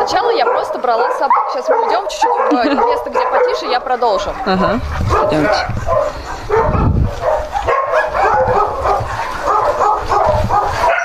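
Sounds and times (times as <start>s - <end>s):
dogs barking: 0.0s - 11.0s.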